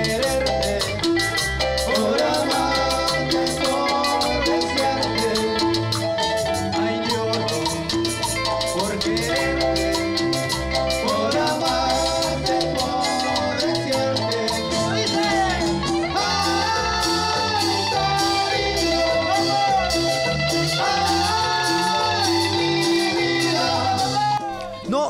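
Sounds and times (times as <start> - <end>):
timbales and cowbell beat: 0.0 - 24.8
electric guitars and keyboard: 0.0 - 25.0.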